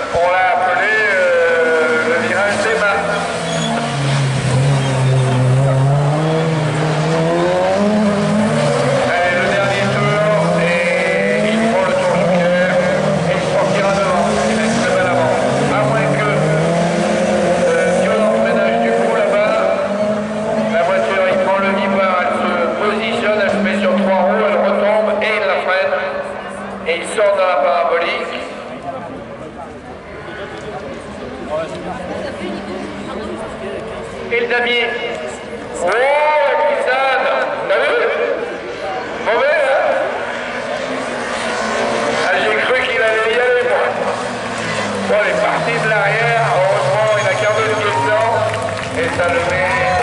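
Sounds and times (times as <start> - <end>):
racing car engines revving: 0.0 - 50.0.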